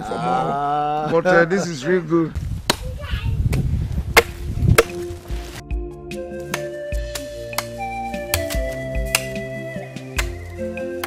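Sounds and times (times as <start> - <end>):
blade chopping firewood: 2.6 - 2.9, 3.5 - 5.6, 6.4 - 11.0
soft background music: 4.4 - 11.0.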